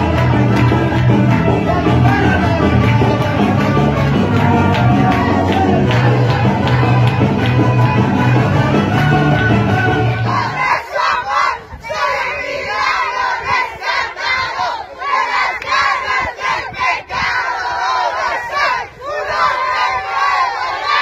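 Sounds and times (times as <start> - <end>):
crowd shouting and cheering: 0.0 - 21.0.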